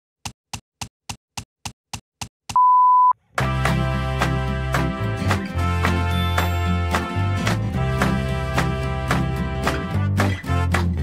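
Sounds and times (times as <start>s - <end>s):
loud steady beep: 2.6s - 3.2s
music with bass line: 3.4s - 11.0s.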